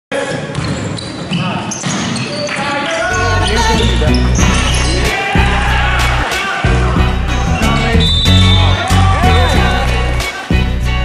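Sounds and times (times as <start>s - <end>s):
basketball game on indoor court: 0.1s - 10.8s
players' voices: 0.1s - 10.8s
music with deep bass beat: 3.5s - 11.0s.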